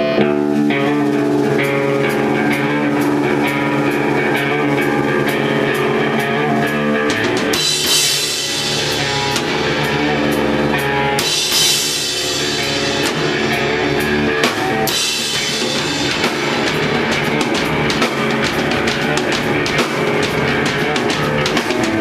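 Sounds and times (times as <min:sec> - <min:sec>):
drum kit with cymbals: 0:00.0 - 0:22.0
electric guitar chords: 0:00.0 - 0:22.0.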